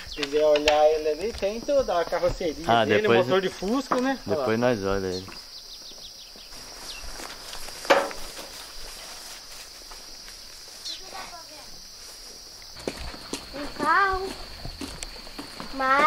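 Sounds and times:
high-pitched insect drone: 0:00.0 - 0:05.8, 0:06.5 - 0:16.0
footsteps on dirt: 0:00.0 - 0:16.0.

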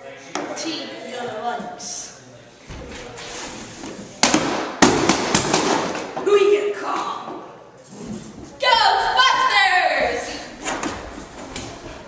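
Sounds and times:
sharp bangs ringing in a hall: 0:04.2 - 0:06.3.

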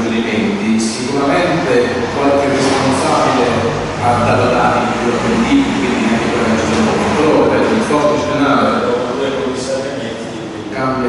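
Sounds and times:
person talking: 0:00.0 - 0:11.0
steady background noise: 0:00.0 - 0:11.0.

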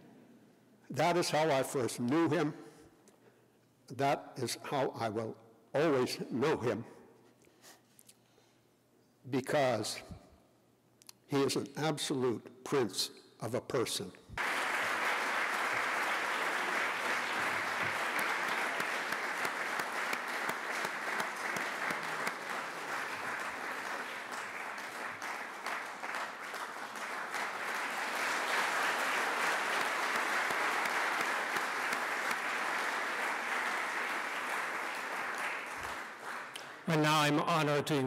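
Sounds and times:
dinner guests applauding: 0:14.4 - 0:37.4.

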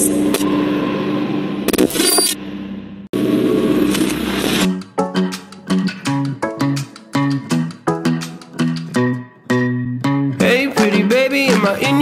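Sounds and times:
low synth drone: 0:02.4 - 0:04.8.

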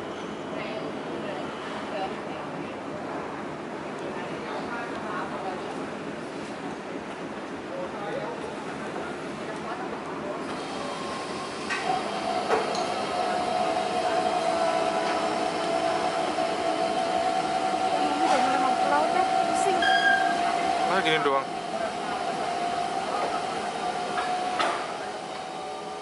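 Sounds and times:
faint voices: 0:11.8 - 0:26.0.

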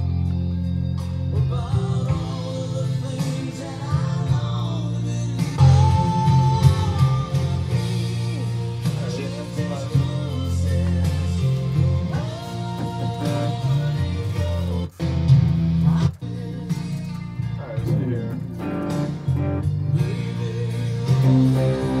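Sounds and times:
guitar: 0:00.0 - 0:22.0
person singing: 0:01.3 - 0:15.0, 0:15.8 - 0:22.0.

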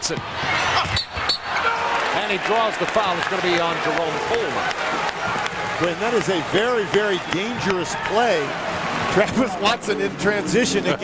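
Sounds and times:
arena noise: 0:00.0 - 0:11.0
sneaker squeaks: 0:00.8 - 0:01.6.

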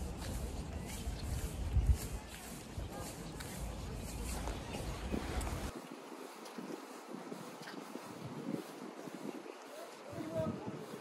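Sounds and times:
wind buffeting the microphone: 0:00.0 - 0:11.0.

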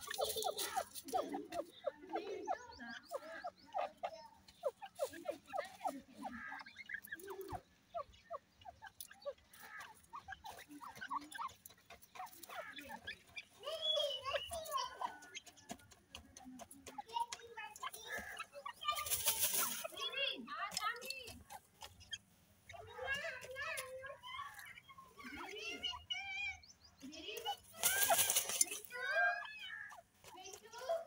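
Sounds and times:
wings flapping: 0:00.0 - 0:01.6, 0:18.0 - 0:20.1, 0:27.5 - 0:29.2
francolins calling: 0:00.0 - 0:15.8, 0:17.2 - 0:31.0.

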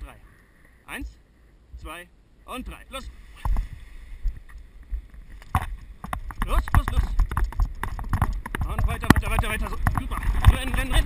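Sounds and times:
wind buffeting microphone: 0:03.4 - 0:11.0
running footsteps: 0:03.5 - 0:11.0.

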